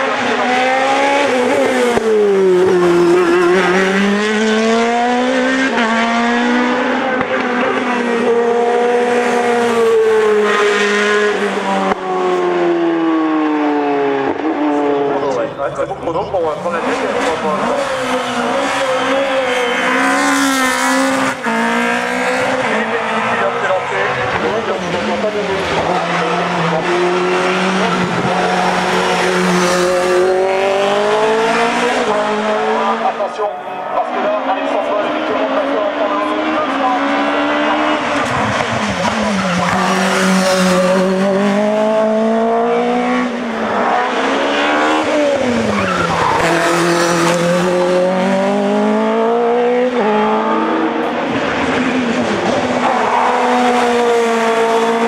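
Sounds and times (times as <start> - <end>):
racing car engine revving hard: 0.0 - 15.5, 16.3 - 55.0.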